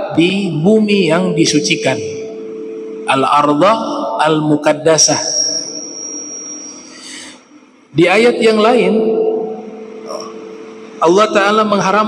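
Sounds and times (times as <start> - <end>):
amplified speech: 0.0 - 2.4, 3.0 - 5.6, 7.9 - 9.4, 11.0 - 12.0
low hum: 0.0 - 12.0
thin high ringing tone: 1.2 - 7.4.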